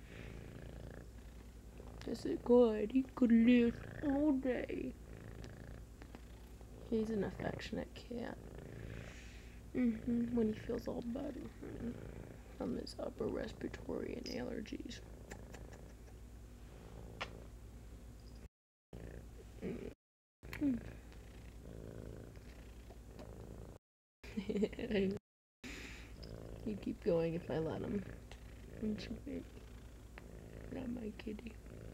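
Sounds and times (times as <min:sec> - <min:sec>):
cat purring: 0:00.0 - 0:17.5, 0:19.0 - 0:23.8, 0:26.1 - 0:31.9.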